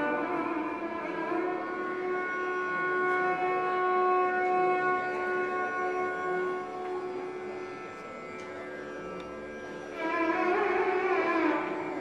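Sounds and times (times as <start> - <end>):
violin long bowed note: 0.0 - 12.0.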